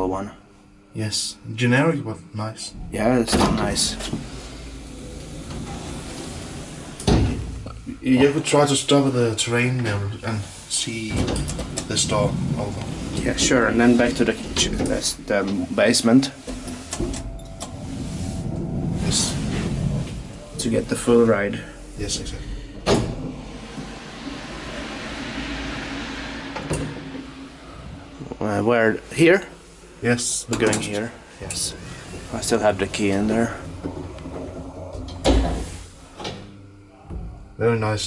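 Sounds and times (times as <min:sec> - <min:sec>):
elevator rumbling: 0:02.6 - 0:38.0
elevator knock: 0:02.8 - 0:08.4, 0:22.0 - 0:28.4, 0:31.8 - 0:36.5.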